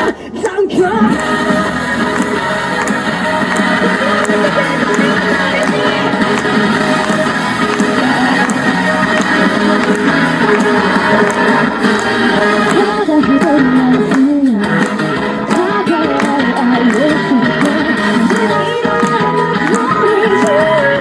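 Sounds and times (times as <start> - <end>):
pop-rock music from speaker: 0.8 - 21.0.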